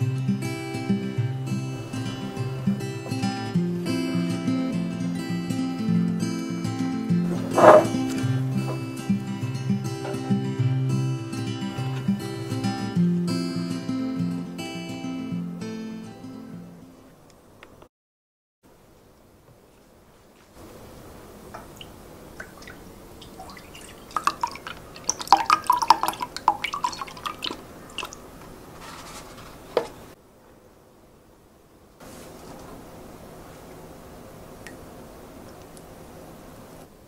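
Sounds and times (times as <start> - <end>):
acoustic guitar music: 0.0 - 17.1
milk glugging into a cup: 22.4 - 28.3.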